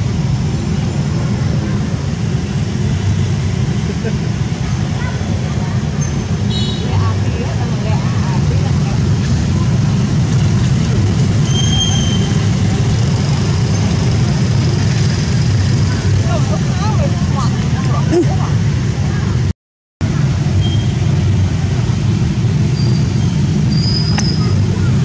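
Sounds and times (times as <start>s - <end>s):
low outdoor rumble: 0.0s - 25.0s.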